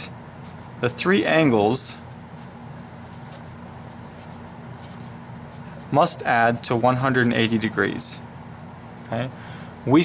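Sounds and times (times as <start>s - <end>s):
steady low hum: 0.0s - 10.0s
marker writing on paper: 2.0s - 7.4s.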